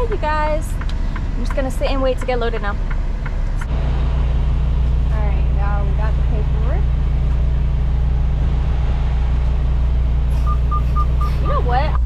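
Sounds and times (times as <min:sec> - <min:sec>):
diesel truck engine droning: 0:00.0 - 0:12.0.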